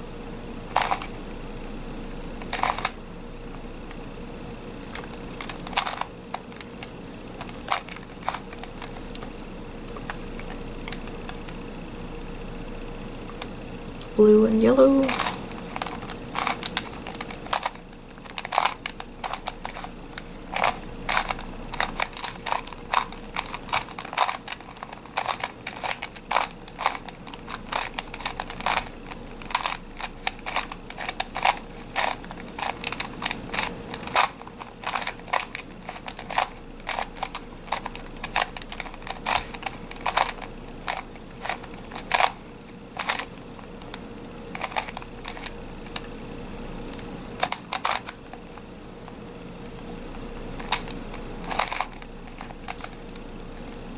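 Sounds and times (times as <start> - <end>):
plastic puzzle pieces clicking: 2.5 - 3.0, 15.0 - 19.9, 20.5 - 42.3, 43.0 - 43.3, 44.6 - 46.0.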